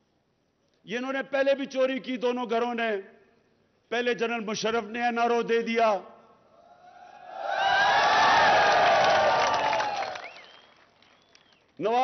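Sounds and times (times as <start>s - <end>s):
crowd shouting and cheering: 6.7s - 10.3s.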